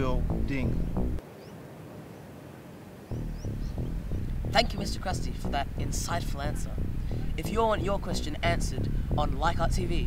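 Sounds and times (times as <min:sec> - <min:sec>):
music: 0:00.0 - 0:01.2, 0:03.1 - 0:10.0.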